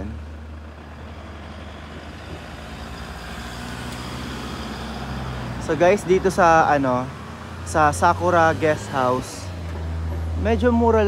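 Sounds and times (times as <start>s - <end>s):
van engine running: 0.0s - 11.0s.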